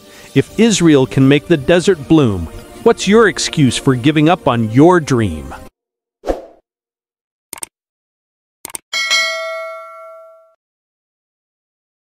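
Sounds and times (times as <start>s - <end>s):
bright bell ding: 9.0s - 10.6s.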